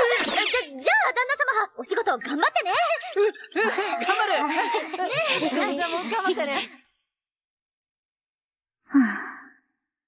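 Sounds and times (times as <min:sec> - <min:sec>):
woman's breathy sigh: 0:08.9 - 0:09.6.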